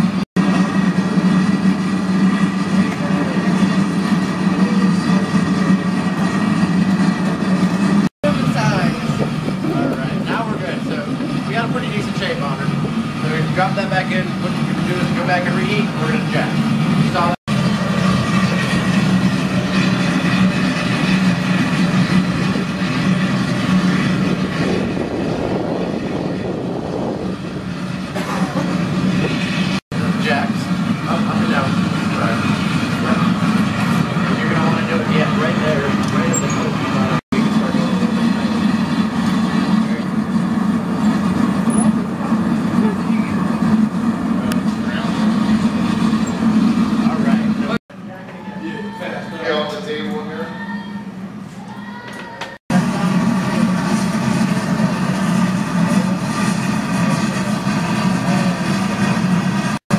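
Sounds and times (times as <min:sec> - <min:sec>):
furnace low drone: 0:00.0 - 0:59.9
faint voices: 0:30.1 - 0:40.2, 0:41.8 - 0:59.2.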